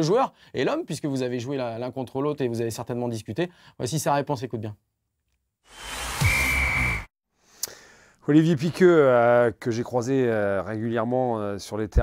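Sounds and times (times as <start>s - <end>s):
transition whoosh with high tone: 5.7s - 7.1s.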